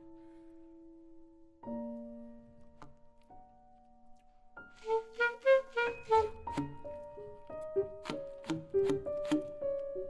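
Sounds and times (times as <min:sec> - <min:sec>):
grand piano notes and chords: 0:00.0 - 0:10.0.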